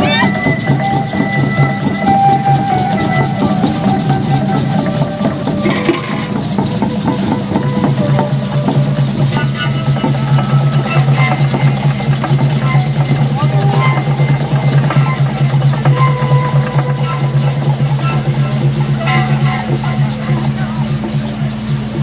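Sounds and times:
hand drums: 0:00.0 - 0:22.0
long held melody notes: 0:00.0 - 0:22.0
shaken rattles: 0:00.0 - 0:22.0.

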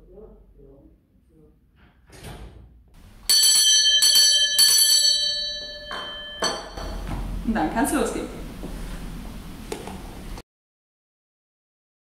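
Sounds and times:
hand bell ringing: 0:03.2 - 0:07.1.

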